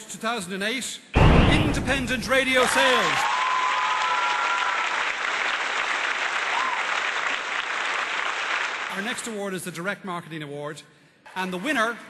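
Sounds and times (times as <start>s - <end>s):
audience applauding: 2.3s - 9.3s
short cheers: 2.6s - 5.0s, 6.5s - 7.0s.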